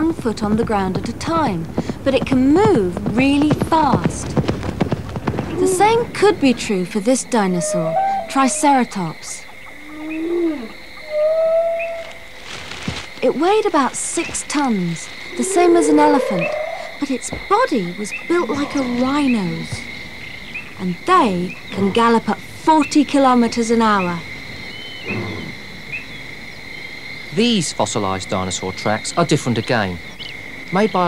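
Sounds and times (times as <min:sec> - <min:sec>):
insect trill: 0:00.0 - 0:31.0
pitched moaning sounds: 0:07.4 - 0:08.9, 0:09.8 - 0:12.3, 0:15.2 - 0:17.2.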